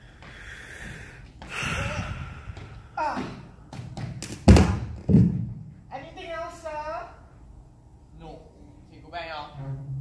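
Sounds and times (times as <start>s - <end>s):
heavy thuds: 0.2s - 5.9s.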